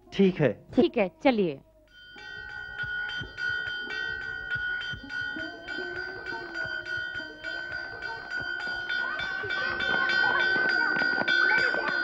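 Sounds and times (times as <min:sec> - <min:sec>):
metal bell struck with hammer: 0:01.9 - 0:12.0.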